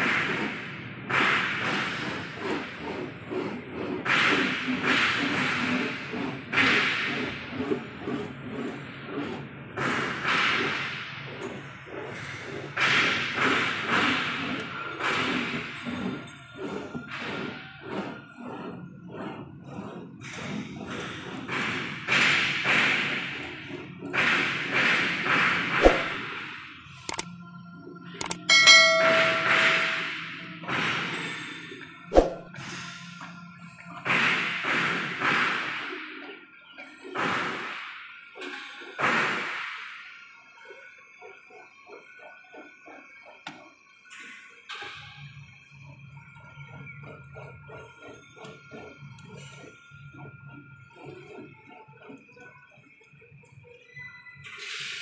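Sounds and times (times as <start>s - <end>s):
hand tool rasping on rubber: 1.2s - 26.3s
sharp metal knocks: 28.2s - 31.3s.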